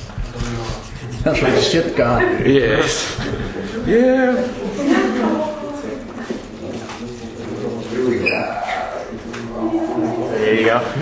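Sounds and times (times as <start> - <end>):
room chatter: 0.0 - 11.0.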